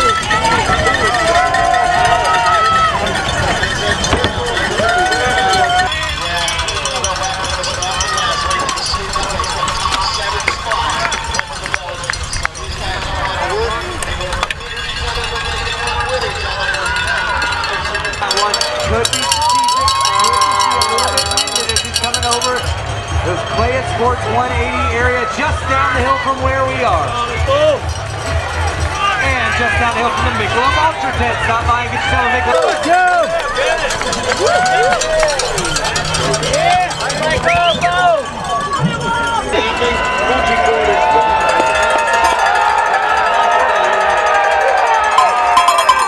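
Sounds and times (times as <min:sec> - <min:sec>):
cowbells clanging: 0:00.0 - 0:46.0
spectators shouting and cheering: 0:00.0 - 0:46.0.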